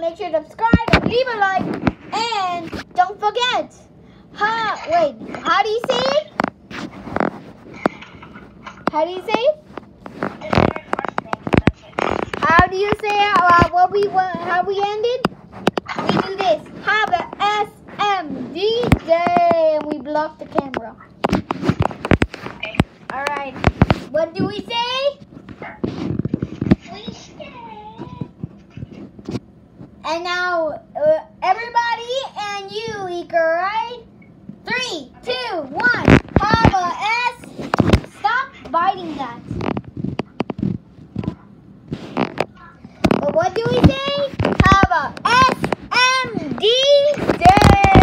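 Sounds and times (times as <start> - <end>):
child's voice: 0.0 - 6.4, 10.4 - 15.3, 15.9 - 21.1, 26.8 - 28.4, 30.0 - 39.6, 42.5 - 48.0.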